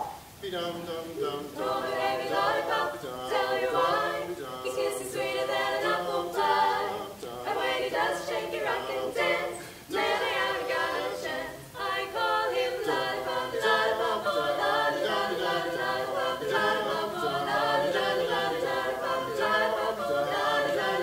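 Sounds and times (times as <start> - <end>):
a cappella vocal quartet singing: 0.0 - 21.0.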